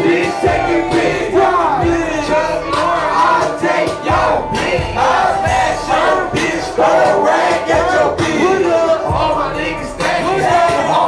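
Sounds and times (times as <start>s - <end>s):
loud hip-hop beat: 0.0s - 11.0s
rappers shouting into microphones: 0.0s - 11.0s
heavy bass hits: 0.5s - 3.2s, 4.1s - 6.8s.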